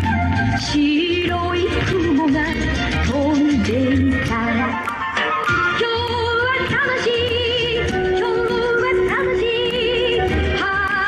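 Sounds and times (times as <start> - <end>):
dance music over loudspeaker: 0.0 - 11.0.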